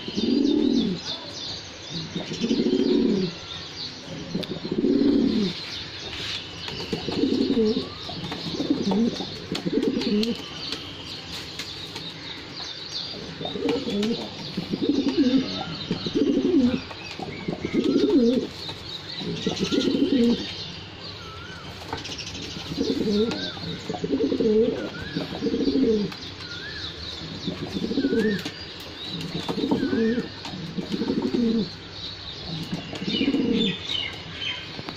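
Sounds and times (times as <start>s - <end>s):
pigeons cooing: 0.0s - 1.2s, 1.9s - 3.4s, 4.1s - 5.6s, 6.7s - 10.6s, 13.1s - 20.6s, 22.4s - 31.8s, 32.4s - 33.9s.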